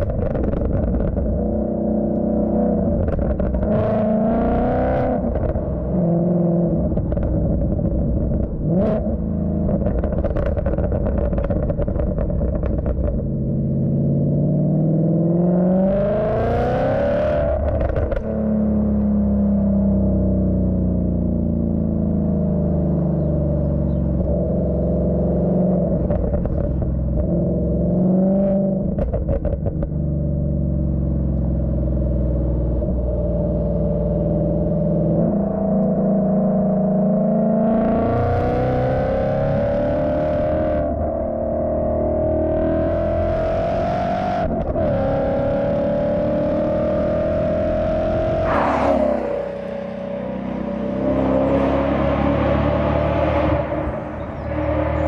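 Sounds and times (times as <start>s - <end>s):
car exhaust while driving: 0.0s - 55.0s.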